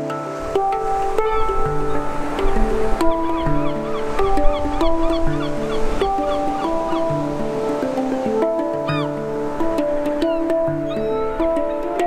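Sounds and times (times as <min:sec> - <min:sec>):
ocean surf hissing: 0:00.0 - 0:12.0
steel handpan notes ringing: 0:00.0 - 0:12.0.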